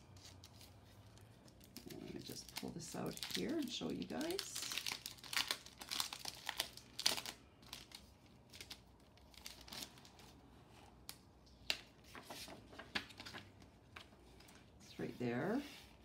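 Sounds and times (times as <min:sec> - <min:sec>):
plastic packaging crinkling: 0:00.0 - 0:10.4.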